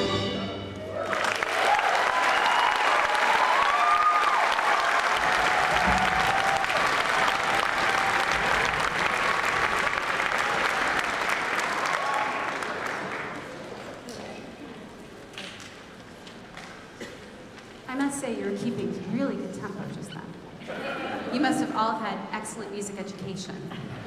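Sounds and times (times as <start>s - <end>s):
crowd calling out: 0.0s - 8.8s
audience applauding: 0.8s - 14.2s.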